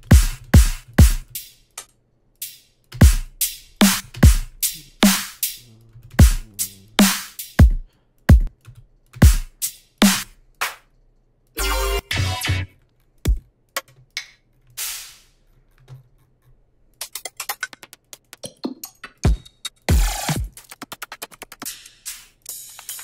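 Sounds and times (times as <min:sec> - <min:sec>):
dubstep kick drums: 0:00.0 - 0:01.3, 0:03.0 - 0:05.6, 0:06.2 - 0:08.5, 0:09.2 - 0:10.2
snare hits: 0:09.2 - 0:10.8.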